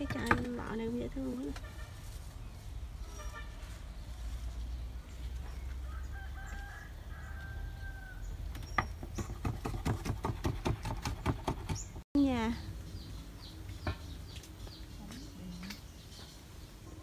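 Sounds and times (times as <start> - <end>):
rooster crowing: 5.8 - 8.4
knife chopping on wooden board: 8.8 - 11.8.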